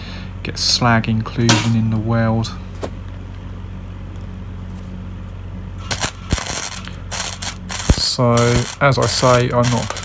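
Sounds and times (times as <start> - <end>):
welder humming: 5.8 - 10.0
welding arc crackling: 5.8 - 10.0.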